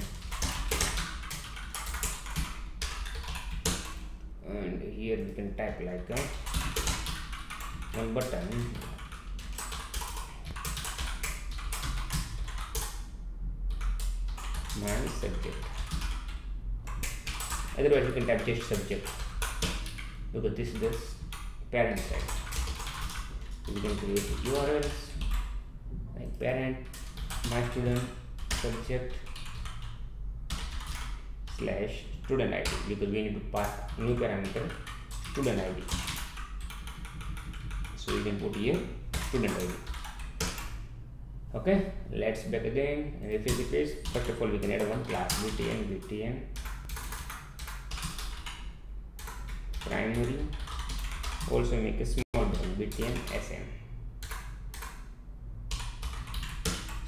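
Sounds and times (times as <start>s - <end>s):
rapid typing on computer keyboard: 0.0s - 4.0s, 5.7s - 13.1s, 13.7s - 25.6s, 26.8s - 40.8s, 43.3s - 51.7s, 52.3s - 53.6s, 54.2s - 55.1s, 55.7s - 57.0s.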